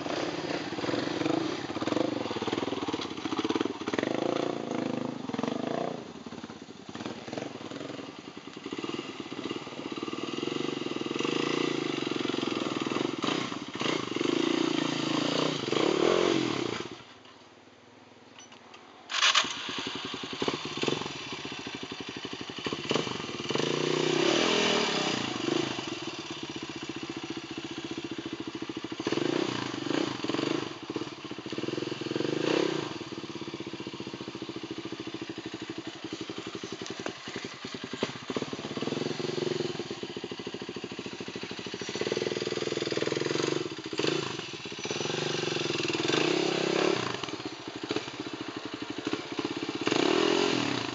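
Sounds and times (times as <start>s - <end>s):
motorcycle engine revving: 0.0s - 17.1s, 19.1s - 50.9s.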